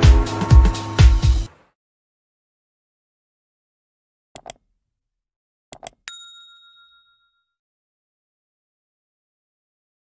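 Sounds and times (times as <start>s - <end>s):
bright bell ding: 6.1s - 7.6s.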